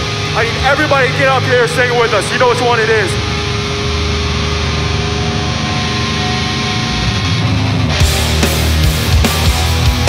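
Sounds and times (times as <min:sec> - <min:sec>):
distorted electric guitars and bass: 0:00.0 - 0:10.0
guitar feedback tones: 0:00.0 - 0:10.0.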